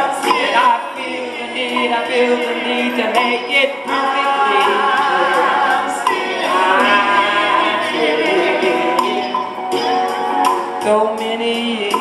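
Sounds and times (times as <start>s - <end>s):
women singing a cappella: 0.0s - 9.3s.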